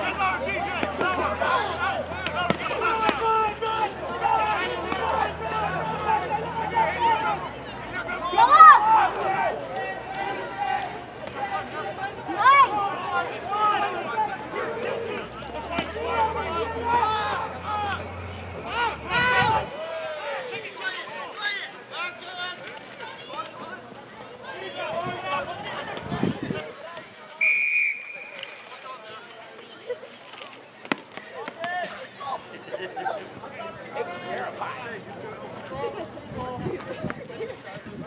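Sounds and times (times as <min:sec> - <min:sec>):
people shouting: 0:00.0 - 0:07.4, 0:08.2 - 0:20.6
referee's whistle blast: 0:27.4 - 0:28.6.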